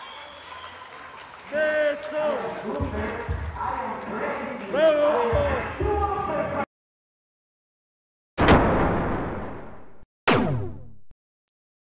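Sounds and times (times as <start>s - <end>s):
synthetic hit with falling sweep: 8.4s - 11.2s.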